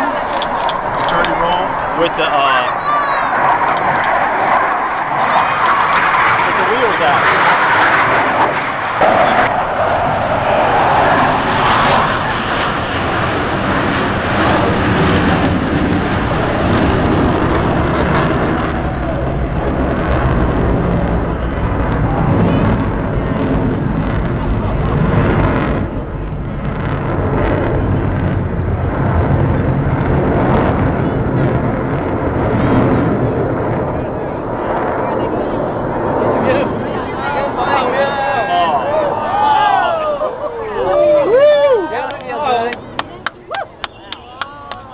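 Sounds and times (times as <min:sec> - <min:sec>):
jet engines flying overhead: 0:00.0 - 0:44.9.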